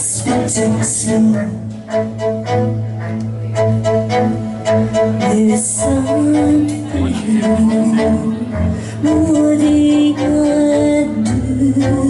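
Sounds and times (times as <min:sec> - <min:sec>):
bowed upright bass: 0:00.0 - 0:12.0.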